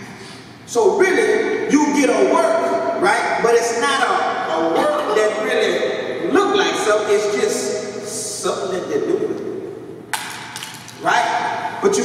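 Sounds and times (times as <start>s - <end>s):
man's amplified voice: 0.7s - 9.7s, 11.0s - 12.0s.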